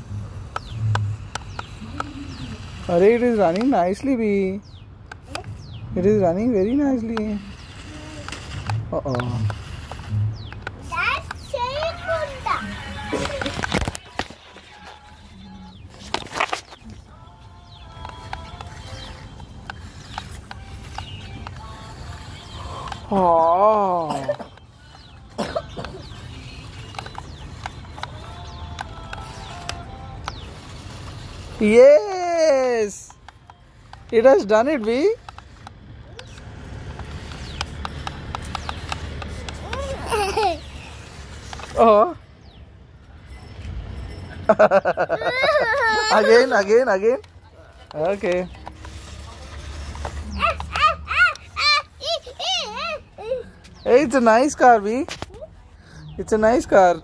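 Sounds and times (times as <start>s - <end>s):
toy truck motor rumbling: 0.0s - 57.0s
scattered clicks: 0.4s - 2.8s, 7.0s - 15.2s, 15.9s - 23.2s, 24.3s - 31.8s, 32.8s - 42.6s, 46.6s - 51.6s
child squealing: 50.3s - 53.4s.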